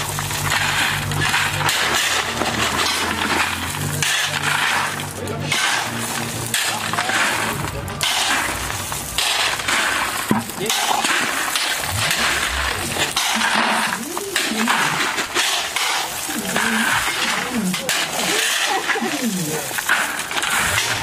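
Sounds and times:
shovels scraping gravel: 0.0 - 21.0
stones rattling into buckets: 0.0 - 21.0.

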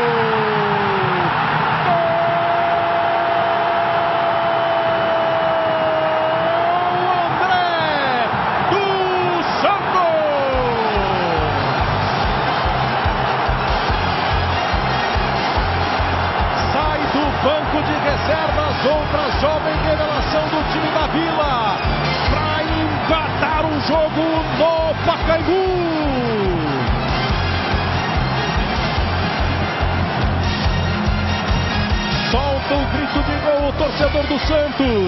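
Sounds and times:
stadium crowd roar: 0.0 - 35.0
commentator's drawn-out goal cry: 16.4 - 26.9, 32.3 - 35.0.

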